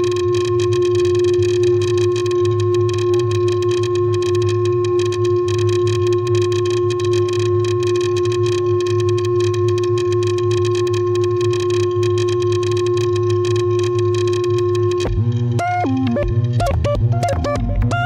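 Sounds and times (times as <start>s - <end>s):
synthesizer drone: 0.0s - 18.0s
thick bass tone: 14.9s - 18.0s.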